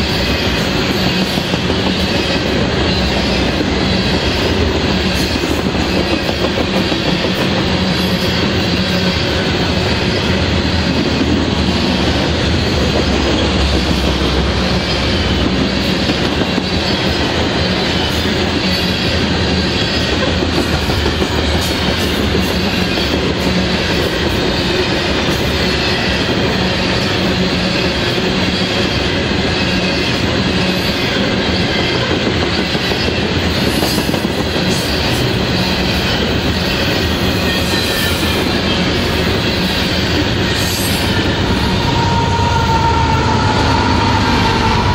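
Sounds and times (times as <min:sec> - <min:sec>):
locomotive whining tone: 0:00.0 - 0:44.9
train wheels rumbling on rails: 0:00.0 - 0:44.9.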